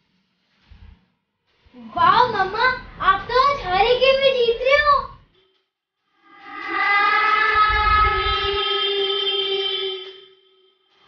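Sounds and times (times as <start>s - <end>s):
steady horn-like tone: 6.1s - 11.0s.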